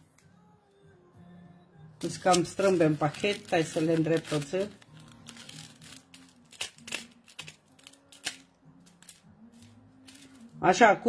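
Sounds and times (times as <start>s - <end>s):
light paper rustling: 2.0s - 10.5s.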